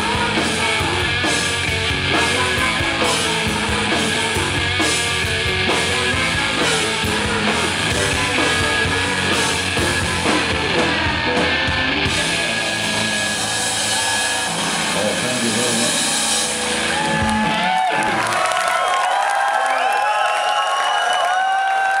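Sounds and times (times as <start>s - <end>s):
live rock band playing: 0.0s - 18.3s
crowd cheering and whistling: 12.1s - 22.0s.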